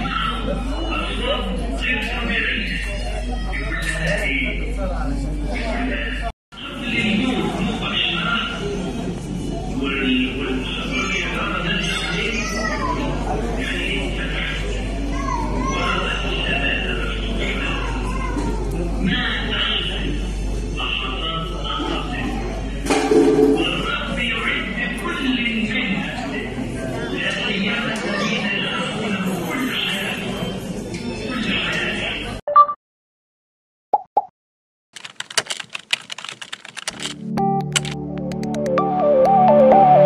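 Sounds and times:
computer keyboard typing clicks: 35.0 - 38.6
background music: 37.0 - 40.0
simple melody: 37.1 - 40.0
synthesizer chord: 37.2 - 40.0.

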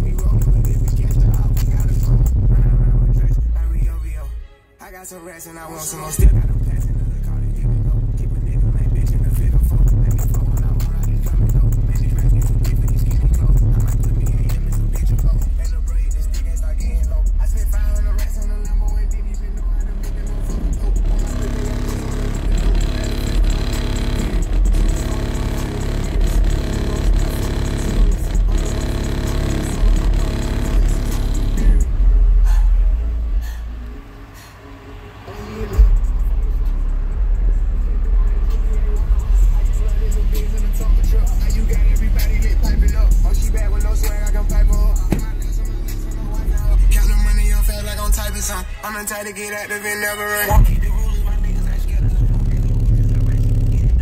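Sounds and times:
deep bass: 0.0 - 4.5, 6.2 - 34.4, 35.7 - 49.0, 50.5 - 54.0
hip hop through car speakers: 0.0 - 54.0.

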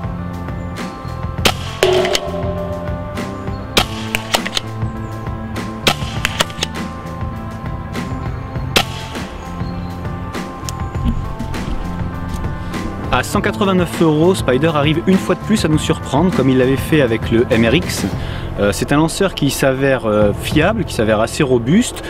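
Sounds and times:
background music: 0.0 - 22.0
paintball gun cracks: 3.8 - 4.7, 5.8 - 6.8, 8.8 - 9.2.

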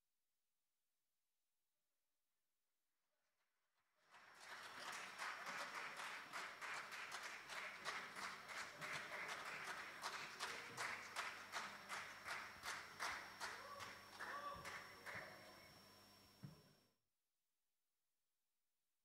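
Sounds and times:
audience applause: 4.0 - 15.5.

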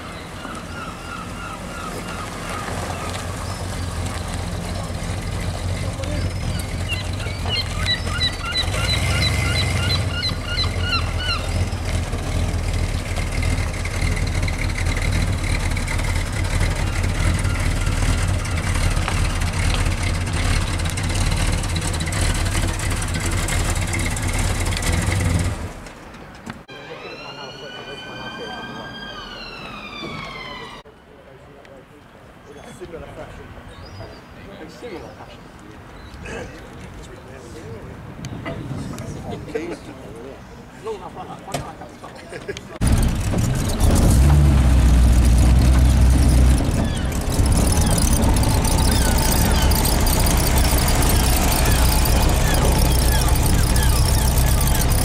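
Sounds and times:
car engine running: 2.6 - 25.9, 42.8 - 55.0
wailing tone: 26.7 - 30.8.

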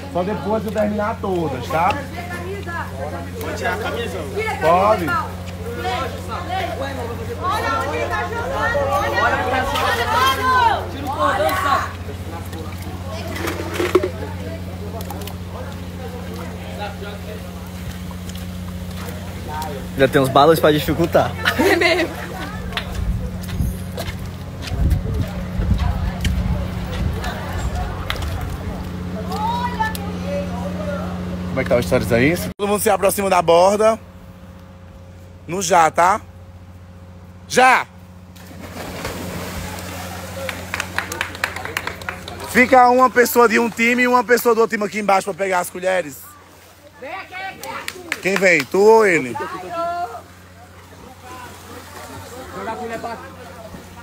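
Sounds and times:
crowd voices and shouting: 0.0 - 32.5
steady low hum: 0.0 - 54.0
people splashing into water: 38.3 - 44.3, 46.4 - 54.0.

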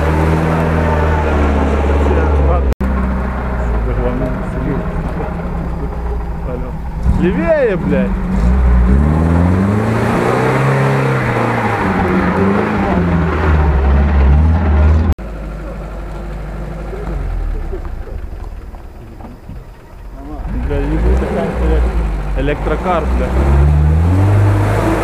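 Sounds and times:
engine revving under load: 0.0 - 15.2, 20.2 - 25.0.

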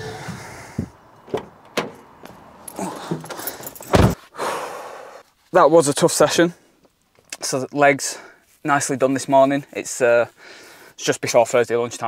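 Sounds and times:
bumping and rustling: 0.0 - 4.2
car door clicks and knocks: 1.2 - 2.0.

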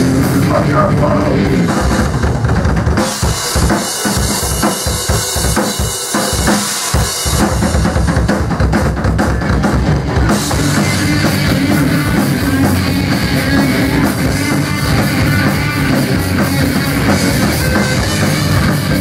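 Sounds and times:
fast bass drum beats: 0.0 - 19.0
live punk band: 0.0 - 19.0.

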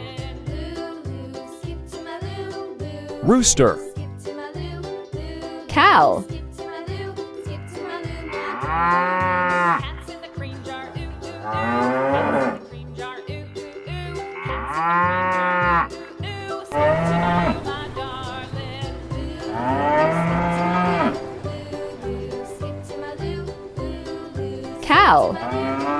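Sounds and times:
cows mooing: 7.7 - 9.8, 11.3 - 12.6, 13.7 - 15.9, 16.7 - 18.4, 19.4 - 21.4, 24.9 - 25.9.

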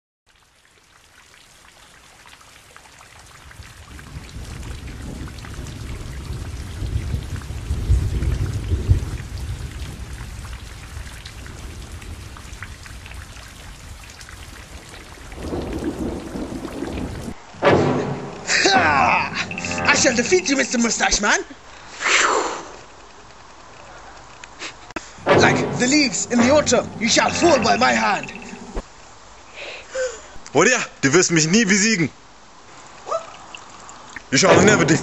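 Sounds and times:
rain falling: 0.3 - 35.0
rolling thunder: 3.4 - 20.5, 25.2 - 28.8.

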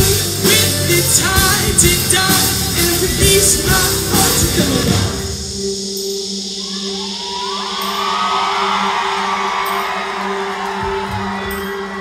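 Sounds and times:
live band music: 0.0 - 5.7
audience whooping and cheering: 6.5 - 12.0.

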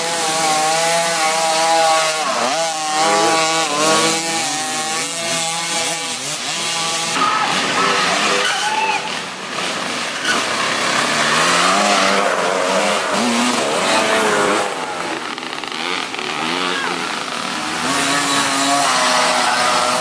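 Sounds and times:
dirt bike engines revving: 0.0 - 20.0.

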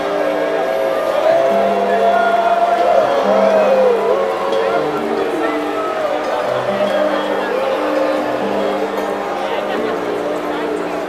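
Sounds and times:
crowd voices: 0.0 - 11.0
held synth notes: 0.0 - 11.0.

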